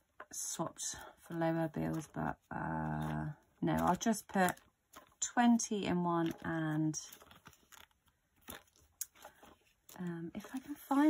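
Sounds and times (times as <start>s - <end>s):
paper rustle: 1.2s - 5.3s, 5.9s - 11.0s
plastic binder pockets crinkling: 1.2s - 11.0s.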